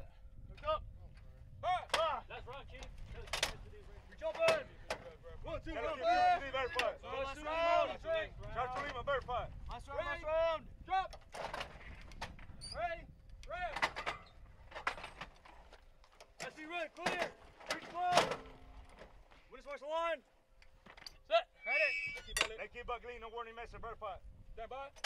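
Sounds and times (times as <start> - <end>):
shouted commands: 5.5 - 11.2, 16.4 - 18.3
metal clanks and knocks: 13.8 - 15.8.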